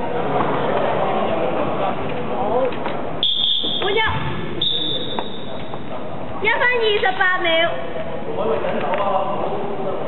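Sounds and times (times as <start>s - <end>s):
voices echoing in a hall: 0.0s - 10.0s
referee's whistle blasts: 3.2s - 5.6s.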